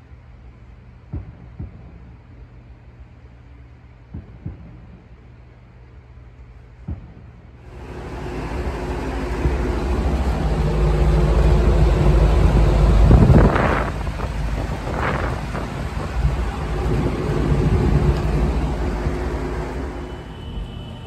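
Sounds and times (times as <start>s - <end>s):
window fan running: 7.6s - 21.0s.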